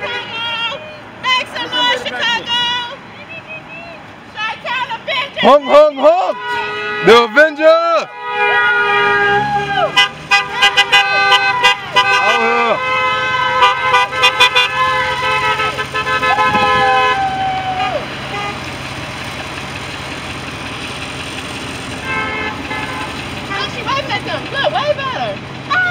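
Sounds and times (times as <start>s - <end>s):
people shouting: 0.0s - 18.4s, 22.8s - 25.9s
car horns honking: 0.0s - 25.9s
engine hum and road noise: 0.0s - 25.9s.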